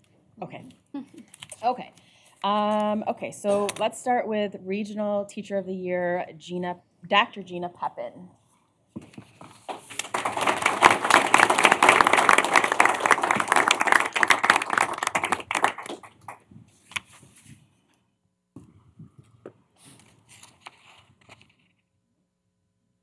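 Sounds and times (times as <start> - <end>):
audience applauding: 9.7 - 16.4.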